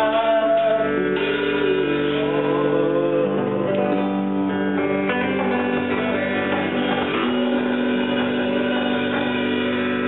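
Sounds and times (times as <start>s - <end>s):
rock band holding ringing chord: 0.0s - 10.0s.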